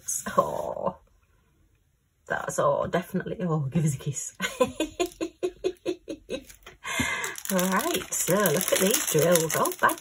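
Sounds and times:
woman laughing: 4.4s - 7.0s.

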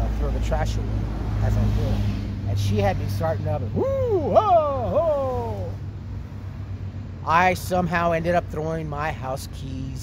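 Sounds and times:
man exclaiming: 3.4s - 5.8s.

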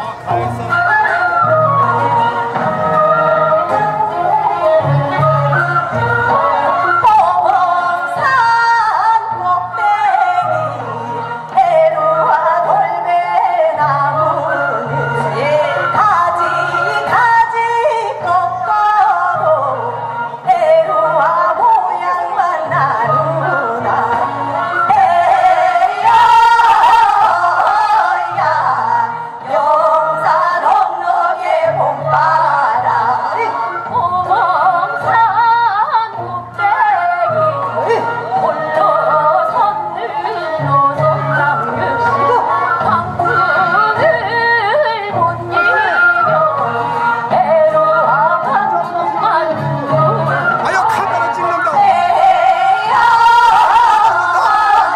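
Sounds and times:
backing music: 0.0s - 54.9s
woman singing through microphone: 0.0s - 54.9s.

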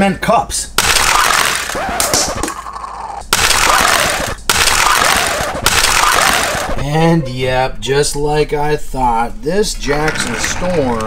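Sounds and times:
toy cars clattering from launcher: 9.9s - 11.0s.

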